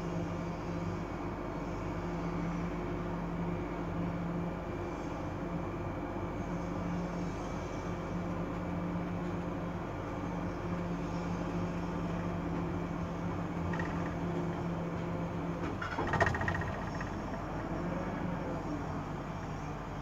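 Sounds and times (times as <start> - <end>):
crane machine hum: 0.0 - 20.0.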